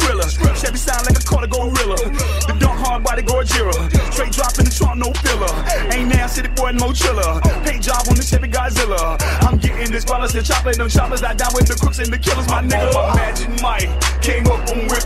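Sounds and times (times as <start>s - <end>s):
deep sustained bass notes: 0.0s - 15.0s
person rapping: 0.0s - 15.0s.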